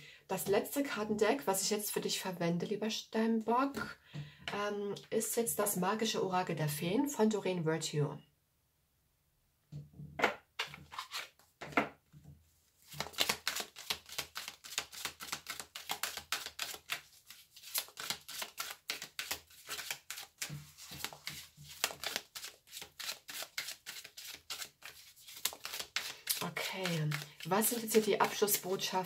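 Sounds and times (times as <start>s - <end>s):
cards shuffled by hand: 10.6s - 11.8s, 12.8s - 29.0s.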